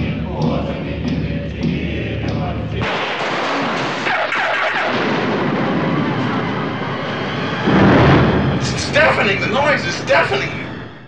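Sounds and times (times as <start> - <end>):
loud dense wall of noise: 0.0 - 11.0
low drone: 0.0 - 11.0.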